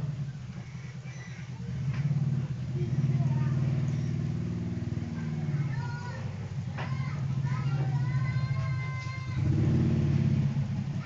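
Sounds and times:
small engine humming: 0:00.0 - 0:11.0
faint high chirps: 0:00.3 - 0:01.8.

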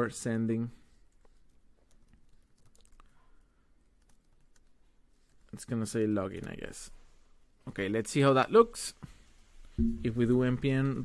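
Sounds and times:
faint keyboard typing: 0:00.9 - 0:05.6, 0:06.2 - 0:06.9.

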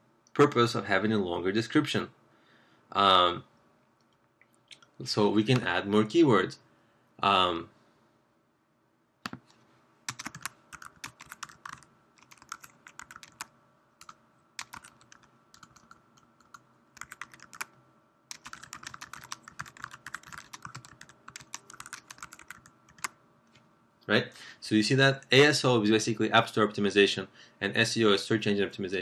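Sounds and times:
computer keyboard typing: 0:10.1 - 0:23.2.

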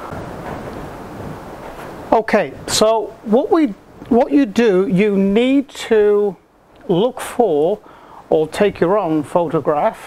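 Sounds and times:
wind gusting: 0:00.0 - 0:09.8.

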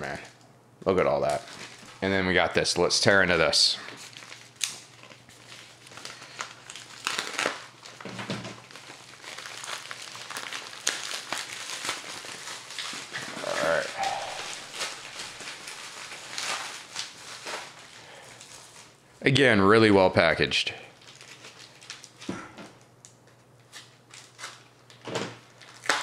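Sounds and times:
plastic bag crinkling: 0:01.2 - 0:02.4, 0:03.0 - 0:19.0, 0:20.9 - 0:22.3, 0:23.2 - 0:26.0.

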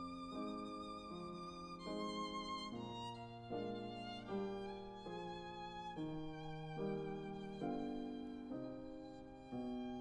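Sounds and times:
violin playing slow melody: 0:00.0 - 0:10.0.

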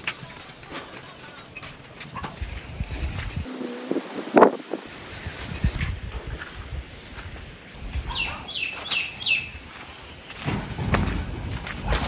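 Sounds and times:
bird calling: 0:03.4 - 0:04.9.

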